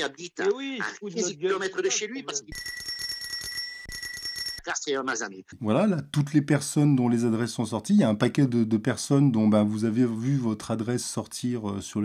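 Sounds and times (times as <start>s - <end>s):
person speaking in voice chat: 0.0s - 2.5s.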